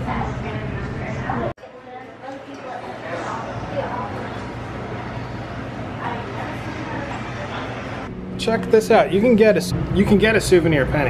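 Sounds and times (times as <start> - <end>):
faint background voices: 0.0 - 8.1
steady low hum: 3.6 - 11.0.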